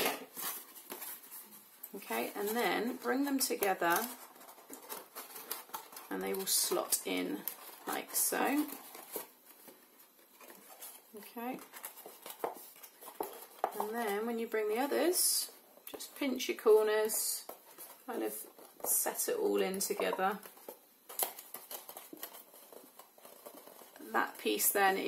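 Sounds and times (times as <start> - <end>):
card rustling and ticking: 0.0 - 14.2, 19.7 - 24.4.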